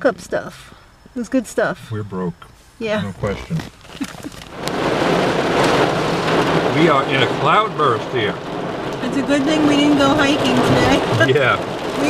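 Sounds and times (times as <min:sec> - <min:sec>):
rain and hail on car roof: 0:03.2 - 0:12.0.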